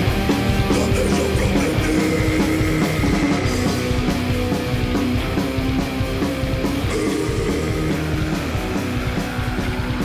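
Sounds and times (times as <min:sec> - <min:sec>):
death metal music: 0:00.0 - 0:10.0
distorted guitar riffing: 0:00.0 - 0:10.0
fast dense drumming: 0:00.1 - 0:10.0.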